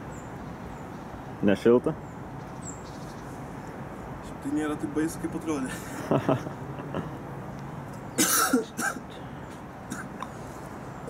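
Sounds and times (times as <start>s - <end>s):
man coughing: 8.2s - 9.2s, 9.9s - 10.2s.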